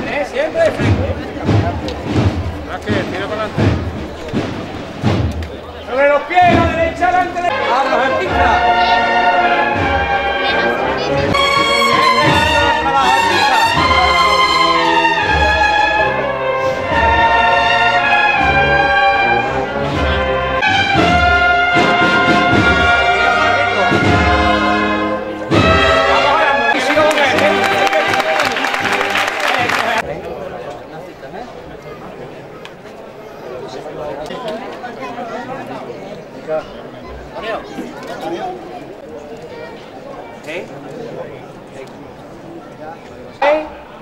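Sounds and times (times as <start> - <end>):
low drum beat: 0.6 - 5.8, 6.4 - 7.4
brass band playing a slow march: 6.4 - 30.0.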